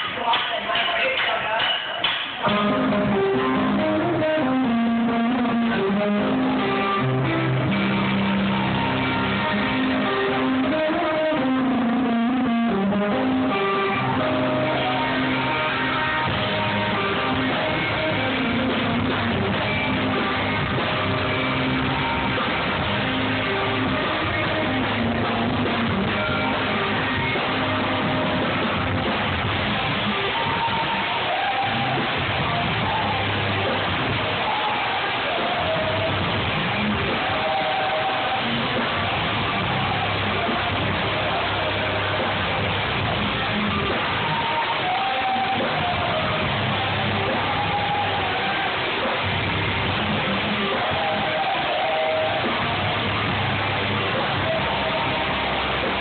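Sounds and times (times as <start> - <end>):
rock band playing live: 0.0 - 56.0.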